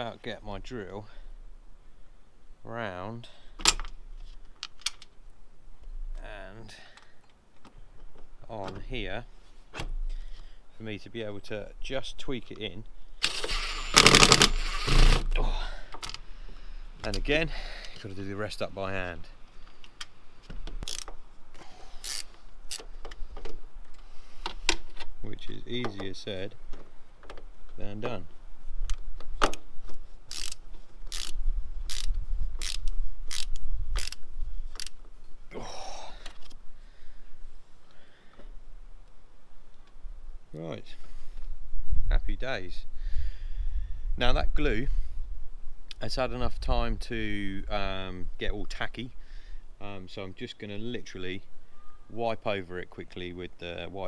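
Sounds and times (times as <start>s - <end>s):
cordless drill driving screw: 13.2s - 15.4s.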